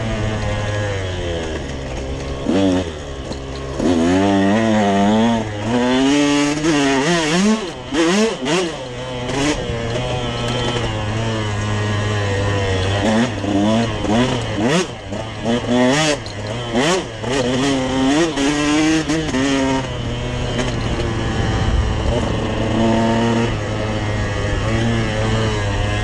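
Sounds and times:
dirt bike engine revving: 0.0s - 26.0s.

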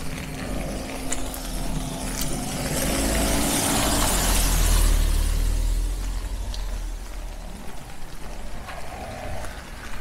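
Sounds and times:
car engine rumble: 0.0s - 10.0s
tyres hissing on wet road: 0.0s - 10.0s.

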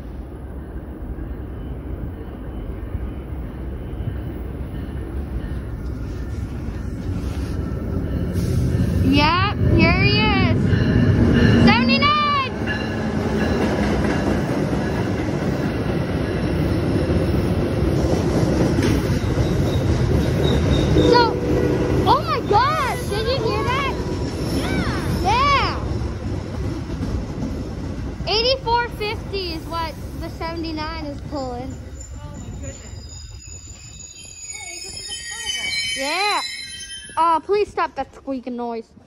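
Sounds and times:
train rumbling past: 0.0s - 39.0s
high-pitched wavering squeals: 19.0s - 26.1s, 29.5s - 37.8s.

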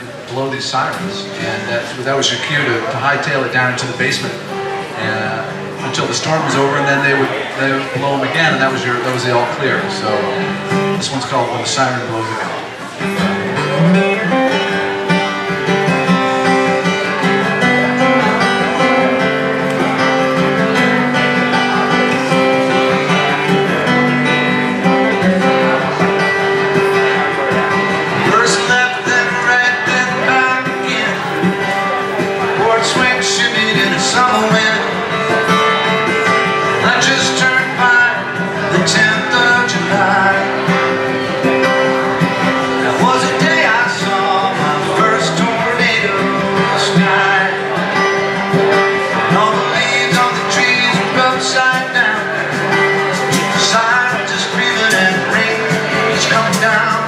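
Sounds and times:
acoustic guitar strummed and picked: 0.0s - 57.0s.

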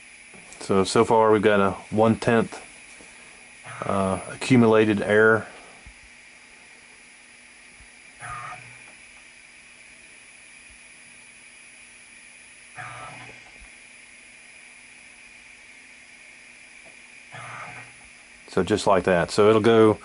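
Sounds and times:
machine hum and hiss: 0.0s - 20.0s
servo motor whir: 3.6s - 4.0s, 8.2s - 9.1s, 12.7s - 13.8s, 17.3s - 18.1s.

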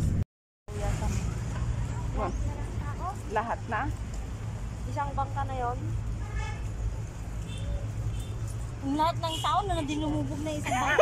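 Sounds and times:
vehicle ride rumble: 0.0s - 11.0s.

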